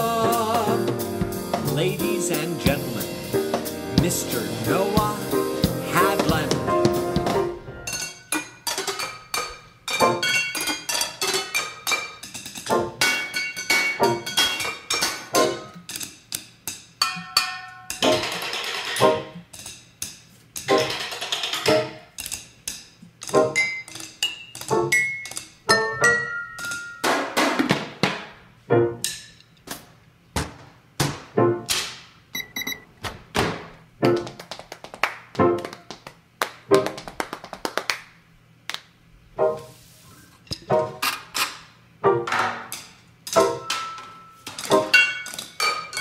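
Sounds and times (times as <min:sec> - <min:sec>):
sticks striking pots and lids: 0:07.9 - 0:22.8.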